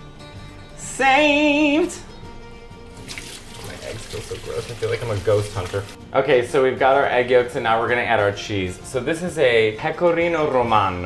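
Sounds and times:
water running into steel sink: 0:03.0 - 0:06.0.

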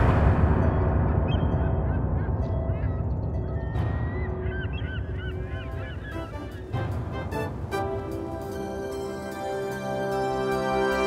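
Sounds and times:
low rumble: 0:00.0 - 0:07.7
flock of birds calling: 0:03.6 - 0:07.4.

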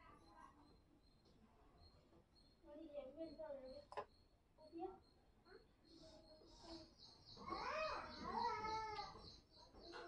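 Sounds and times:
faint high chirping: 0:01.8 - 0:10.0.

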